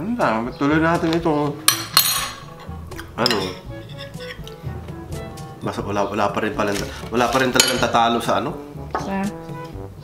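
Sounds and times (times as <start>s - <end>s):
metal spoon clinking on dish: 1.7s - 4.7s, 7.4s - 8.1s.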